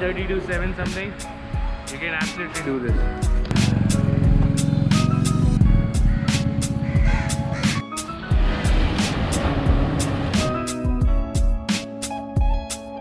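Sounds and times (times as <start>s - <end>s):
background music with steady beat: 0.0s - 13.0s.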